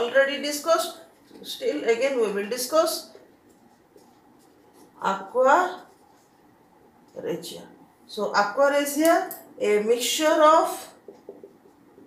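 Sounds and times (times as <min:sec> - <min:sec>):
marker pen on whiteboard: 0:00.1 - 0:07.6, 0:10.1 - 0:12.0.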